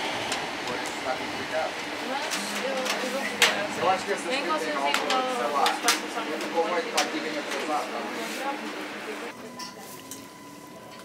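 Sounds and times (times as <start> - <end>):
faint passenger voices: 0.6 - 11.0.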